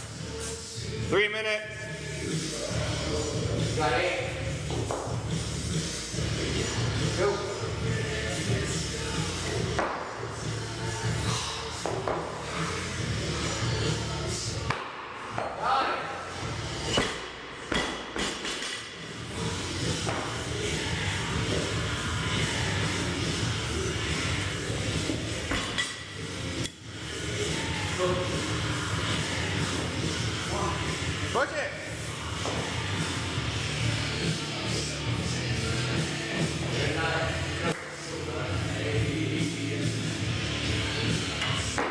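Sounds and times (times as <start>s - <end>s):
background music: 0.0s - 41.9s.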